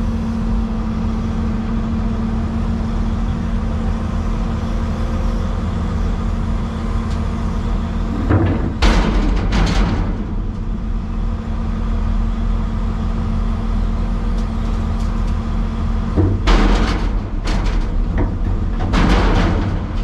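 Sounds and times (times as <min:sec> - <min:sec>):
excavator engine running: 0:00.0 - 0:20.0.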